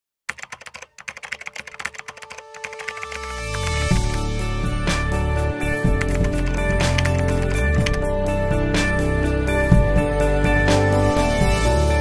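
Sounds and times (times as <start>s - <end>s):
music with deep bass: 3.2s - 12.0s.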